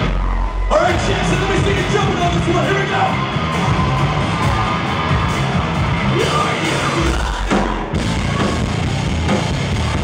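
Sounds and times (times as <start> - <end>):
crowd yelling: 0.0 - 10.0
live rock band playing: 0.0 - 10.0.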